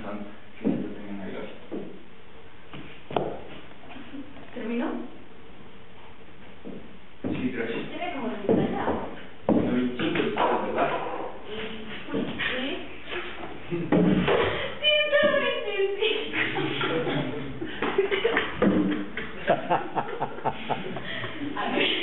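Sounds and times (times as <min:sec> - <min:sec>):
people speaking: 0:07.3 - 0:22.0.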